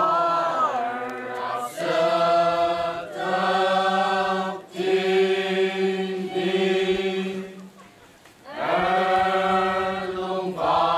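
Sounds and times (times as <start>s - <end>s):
voices chanting long notes: 0.0s - 10.9s.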